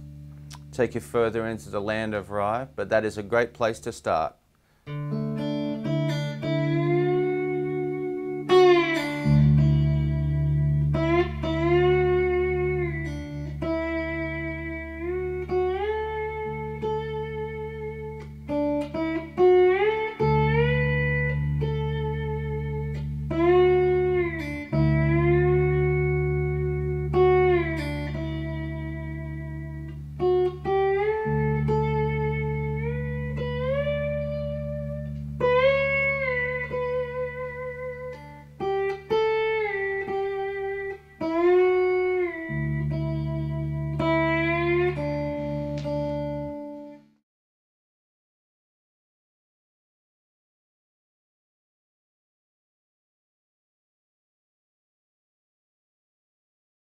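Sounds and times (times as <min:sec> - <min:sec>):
slide electric guitar: 0:00.0 - 0:02.6, 0:04.8 - 0:47.1.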